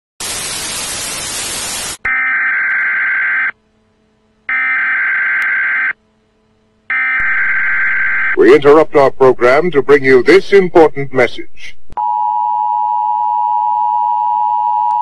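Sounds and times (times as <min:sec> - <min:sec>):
television static hiss: 0:00.2 - 0:04.5, 0:05.2 - 0:12.0.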